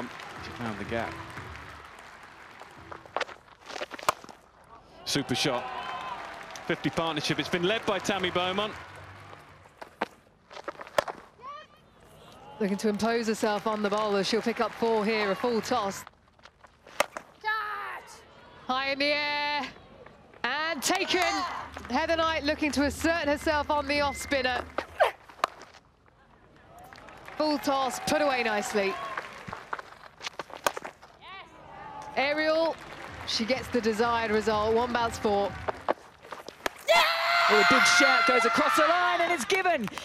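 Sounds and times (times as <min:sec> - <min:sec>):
crowd handclaps: 0:00.0 - 0:03.3, 0:05.4 - 0:09.9, 0:12.9 - 0:16.0, 0:26.8 - 0:30.0, 0:32.4 - 0:36.0
faint crowd noise: 0:11.2 - 0:16.1, 0:17.3 - 0:25.2, 0:26.0 - 0:29.7.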